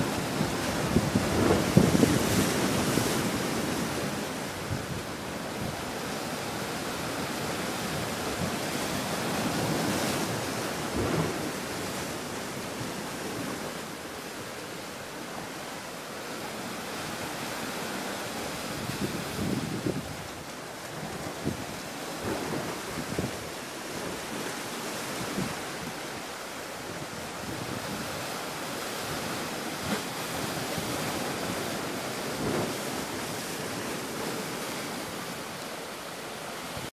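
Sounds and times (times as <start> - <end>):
wind buffeting microphone: 0.0 - 5.8, 18.6 - 35.4
waves washing against rocks: 0.0 - 36.9.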